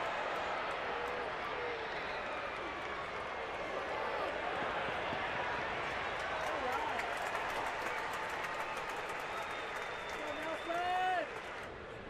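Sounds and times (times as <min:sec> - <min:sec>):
crowd cheering: 0:00.0 - 0:12.0
scattered handclaps: 0:04.2 - 0:11.8.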